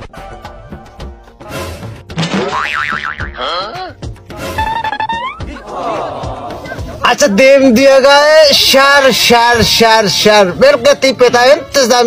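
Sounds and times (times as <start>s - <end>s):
background music: 0.0s - 12.0s
warbling cartoon tone: 4.6s - 5.6s.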